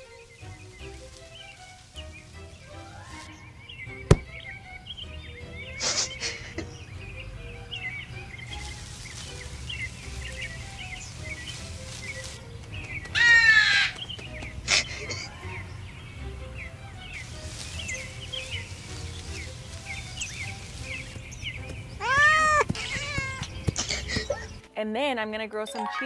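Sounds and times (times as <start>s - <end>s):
chirping bird sound effects: 0.0s - 24.6s
loud bird call: 0.0s - 24.6s
soft background music: 0.0s - 26.0s.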